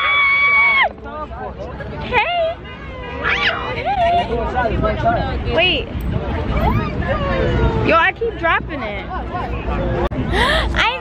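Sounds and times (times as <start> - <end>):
women squealing excitedly: 0.0 - 0.9, 3.2 - 4.3
women laughing: 3.5 - 4.6.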